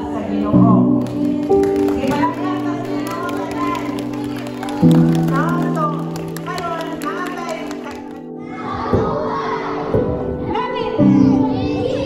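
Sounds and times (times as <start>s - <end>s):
children shouting and chattering: 2.8s - 5.3s, 7.9s - 12.0s.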